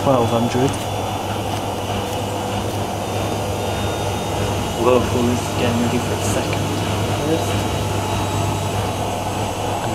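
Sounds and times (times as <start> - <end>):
second washing machine running: 0.0 - 9.9
washing machine drum spinning: 0.0 - 9.9.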